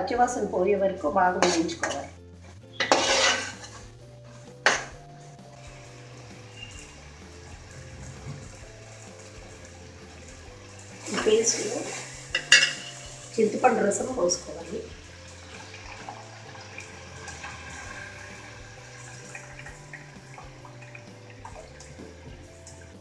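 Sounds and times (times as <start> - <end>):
kitchenware clattering: 1.4 - 3.9, 4.6 - 5.0, 11.0 - 13.7
spoon scraping metal pot: 1.4 - 8.7, 11.0 - 13.7
spoon clink: 12.4 - 13.1.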